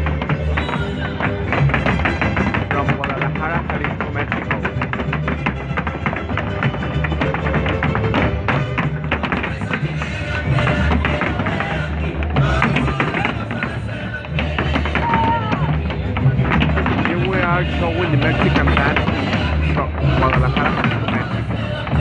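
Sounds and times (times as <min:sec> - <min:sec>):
dance footwork taps on stage: 0:00.0 - 0:22.0
folk dance music: 0:00.0 - 0:22.0.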